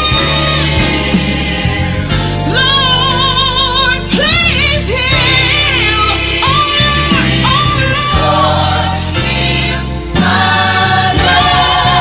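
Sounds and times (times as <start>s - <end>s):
voices singing worship song: 0.0s - 12.0s.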